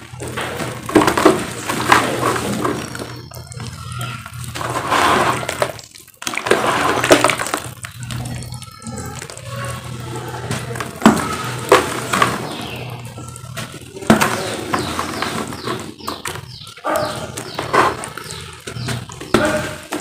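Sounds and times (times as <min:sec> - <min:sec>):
cement crushed in water: 0:00.0 - 0:20.0.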